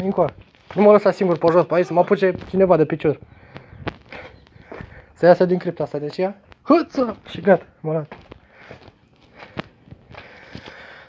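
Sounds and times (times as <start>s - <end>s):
footsteps on sandy stone: 0.0s - 11.0s.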